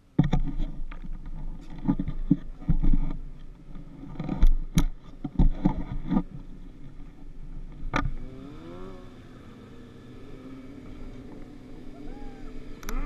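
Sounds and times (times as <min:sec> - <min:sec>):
footsteps and handling thumps: 0:00.2 - 0:08.2
engine running: 0:03.6 - 0:13.0.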